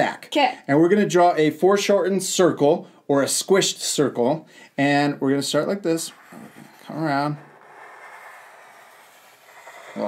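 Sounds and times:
marker sliding across paper: 5.7s - 10.0s.

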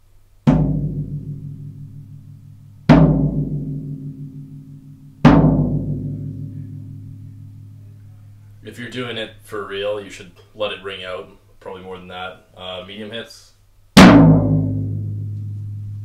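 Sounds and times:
floor tom drum hits: 0.4s - 7.7s, 14.0s - 16.0s.

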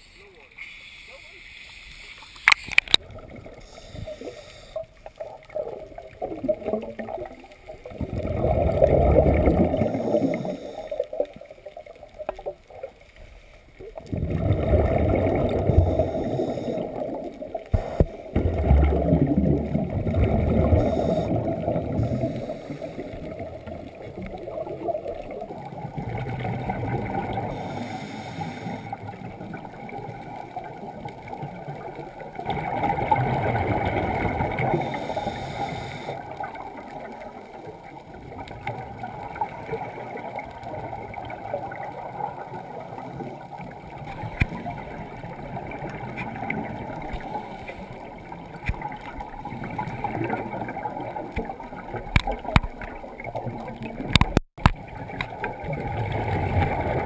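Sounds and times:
underwater regulator bubbles rushing: 5.2s - 11.4s, 13.9s - 57.0s.

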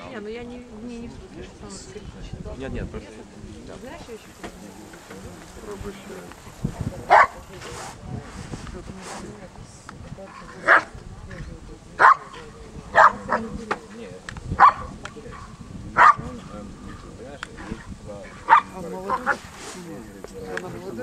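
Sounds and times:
dog barking loudly: 7.1s - 7.4s, 10.6s - 10.9s, 12.0s - 13.4s, 14.6s - 16.3s, 18.4s - 19.4s.

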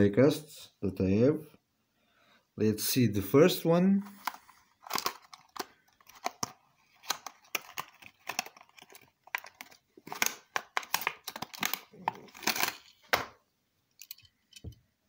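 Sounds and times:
plastic bag crinkling: 4.1s - 13.2s.

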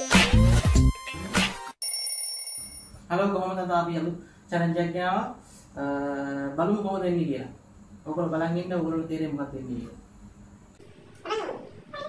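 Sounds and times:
high electronic ringing tone: 1.8s - 3.0s.

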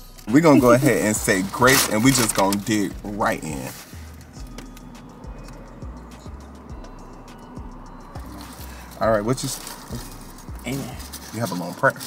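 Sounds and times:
background music with beat: 0.0s - 11.4s.

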